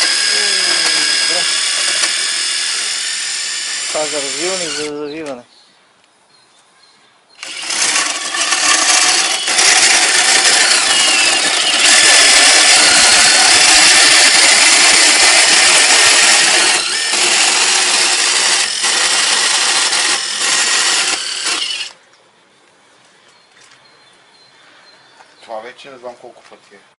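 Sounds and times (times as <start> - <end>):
impact driver hammering: 0.0 - 2.9, 7.4 - 21.9.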